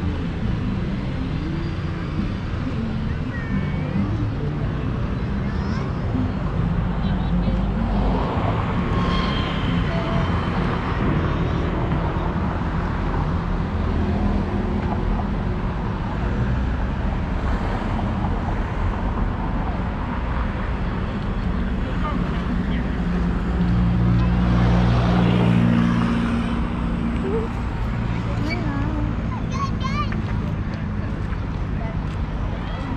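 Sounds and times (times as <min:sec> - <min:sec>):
road traffic: 0:00.0 - 0:32.9
people talking: 0:02.7 - 0:08.3, 0:21.8 - 0:25.7, 0:27.2 - 0:32.9.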